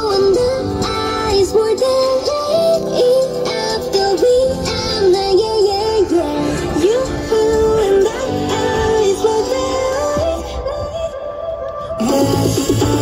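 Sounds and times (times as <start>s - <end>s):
amplified person singing: 0.0s - 13.0s.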